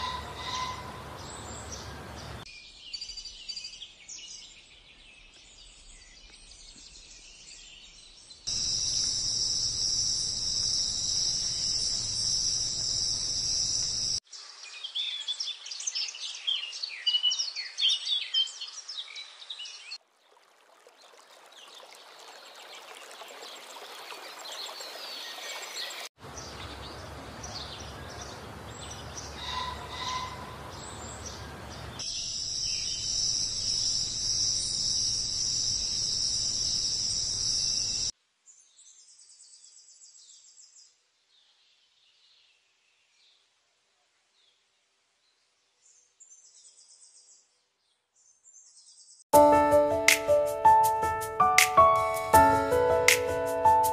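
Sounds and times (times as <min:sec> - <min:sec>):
bird calls: 0:00.0 - 0:03.4, 0:24.4 - 0:38.1
sharp bird chirps: 0:08.4 - 0:14.2
shrill insect chorus: 0:08.5 - 0:14.2, 0:32.0 - 0:38.1.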